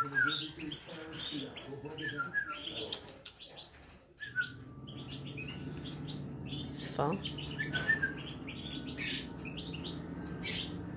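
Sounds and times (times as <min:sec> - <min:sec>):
young bird chirping: 0:00.0 - 0:10.9.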